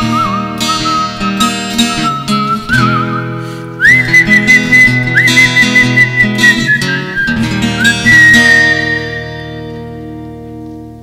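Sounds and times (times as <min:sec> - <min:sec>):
whistled melody: 0:00.0 - 0:09.7
acoustic guitar strumming: 0:00.0 - 0:11.0.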